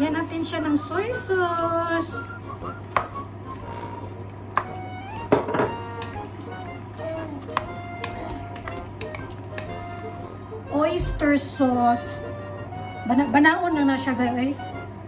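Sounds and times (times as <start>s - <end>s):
background music with held notes: 0.0s - 15.0s
low steady hum: 0.0s - 15.0s
spatula stirring and scraping pot: 2.7s - 9.8s.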